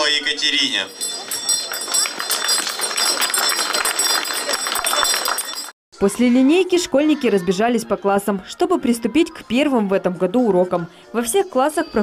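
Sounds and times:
crowd noise: 0.0 - 12.0
handbell ringing: 0.9 - 5.7.

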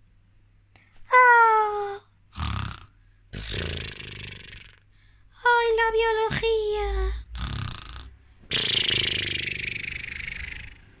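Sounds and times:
person imitating snoring: 1.8 - 4.9, 6.3 - 11.0.

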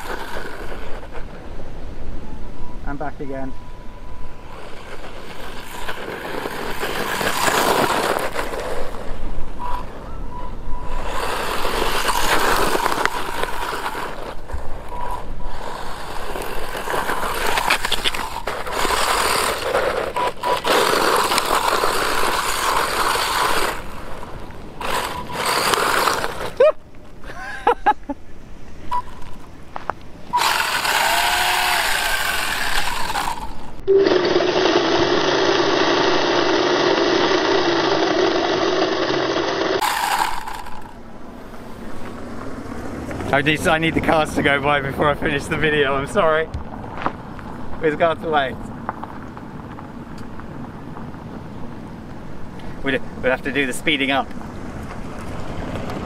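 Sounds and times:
rc buggy motor whine: 0.0 - 1.7, 3.4 - 26.8, 30.3 - 43.8
tyre noise: 0.0 - 2.1, 4.2 - 33.8.

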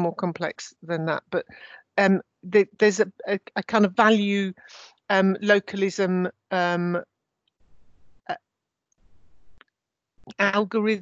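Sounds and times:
faint breathing: 1.5 - 2.0.

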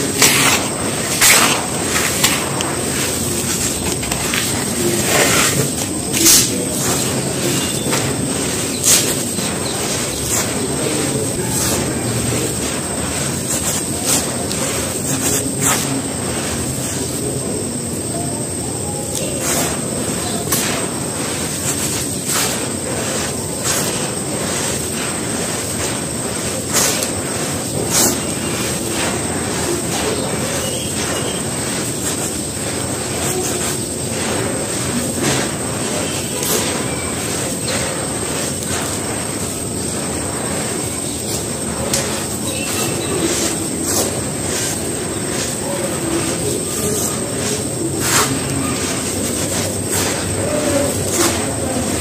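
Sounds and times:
sand and dirt sifting through fingers: 0.0 - 52.0.

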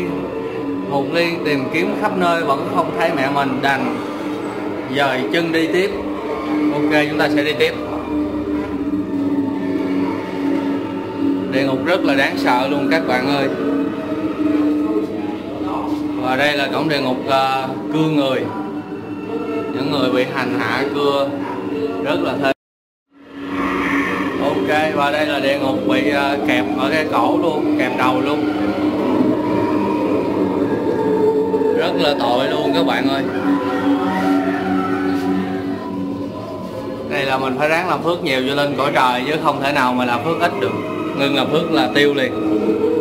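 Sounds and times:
low drone of held tones: 0.0 - 43.0.

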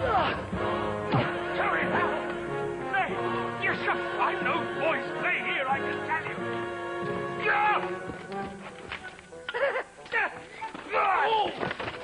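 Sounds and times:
people shouting: 0.0 - 0.5, 7.4 - 7.9
background music: 0.0 - 12.0.

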